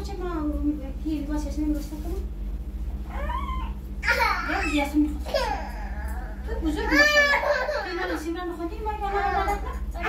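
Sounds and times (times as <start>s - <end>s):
toddler crying: 3.1s - 8.2s.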